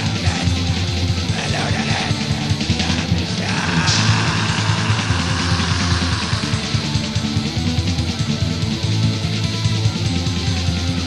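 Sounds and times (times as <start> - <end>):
drums playing: 0.0 - 8.8
distorted electric guitars: 0.0 - 11.0.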